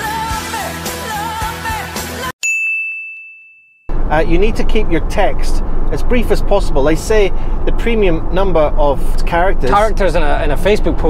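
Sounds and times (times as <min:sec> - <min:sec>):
pop-rock song with woman singing: 0:00.0 - 0:02.3.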